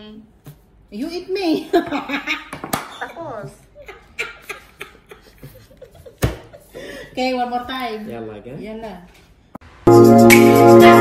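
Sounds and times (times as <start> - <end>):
laughter: 1.6 - 3.2, 3.8 - 7.1.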